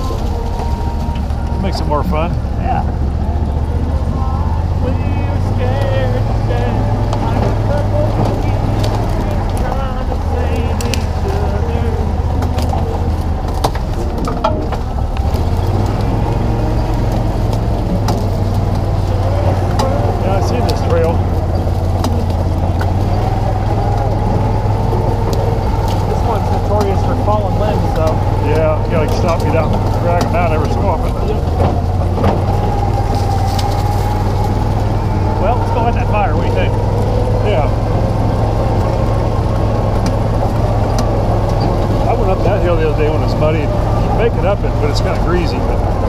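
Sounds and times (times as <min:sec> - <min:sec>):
vehicle engine droning: 0:00.0 - 0:46.0
knocks and rattles: 0:05.4 - 0:46.0.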